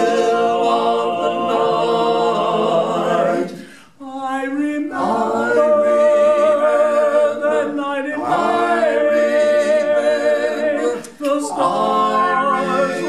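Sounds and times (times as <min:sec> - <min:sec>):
male quartet singing a cappella: 0:00.0 - 0:13.0.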